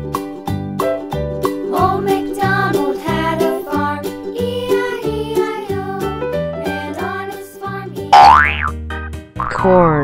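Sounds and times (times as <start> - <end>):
cheerful children's music: 0.0 - 9.9
cartoon pitch-glide effects: 8.1 - 8.7.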